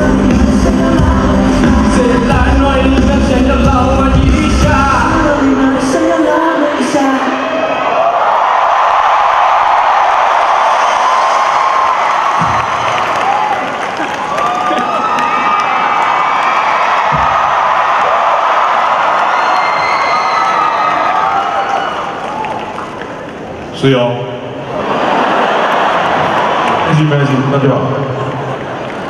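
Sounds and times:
arena crowd cheering: 6.2 - 29.0
low thumps: 17.0 - 17.9.

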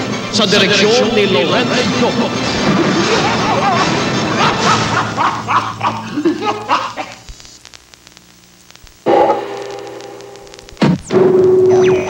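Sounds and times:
faint clicks: 6.3 - 9.0.

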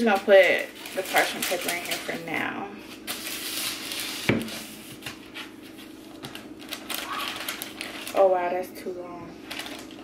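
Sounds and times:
paper rustling and ticking: 0.0 - 2.3, 6.1 - 8.4, 9.5 - 10.0.

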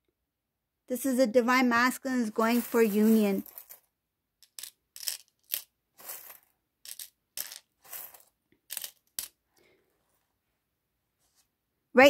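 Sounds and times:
metal charms clinking on tray: 2.4 - 3.8, 4.4 - 9.4.

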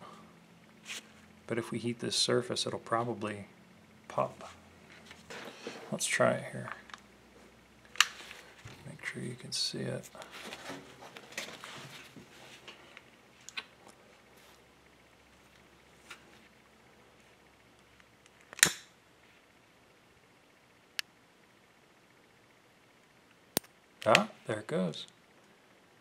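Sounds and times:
glove handling parts: 10.2 - 14.6.

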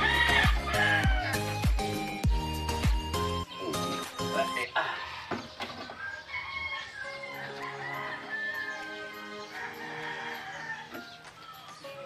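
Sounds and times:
rooster crowing: 0.0 - 1.6, 5.9 - 11.0
soft background music: 0.0 - 12.0.

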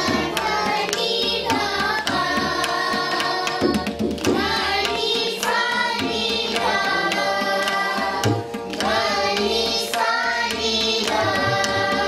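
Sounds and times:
children singing in unison: 0.0 - 12.0
tabla strokes: 0.0 - 12.0.

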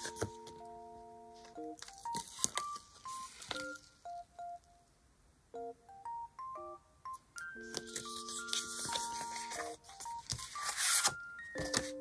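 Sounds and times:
soft electronic beep melody: 0.0 - 4.8, 5.5 - 12.0
paper sticker sheets rustling: 1.4 - 4.0, 7.6 - 12.0.

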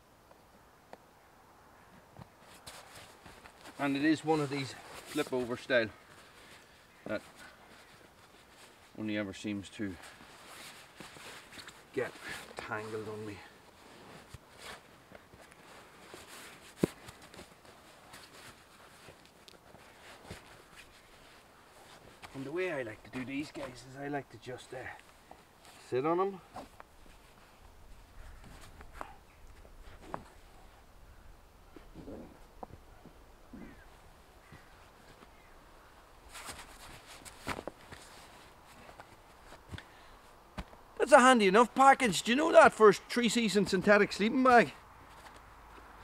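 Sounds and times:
nylon sack rustling: 2.4 - 9.1, 9.9 - 23.9, 34.5 - 39.8.

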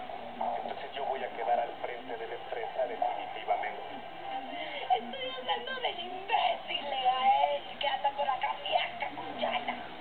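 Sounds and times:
television dialogue: 0.0 - 10.0.

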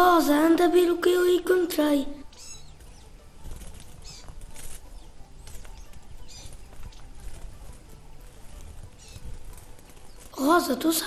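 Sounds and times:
high bird chirps: 2.2 - 10.4.

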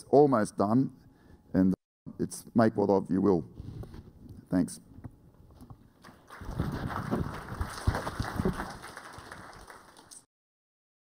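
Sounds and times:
lavalier microphone handling noise: 3.5 - 8.7.

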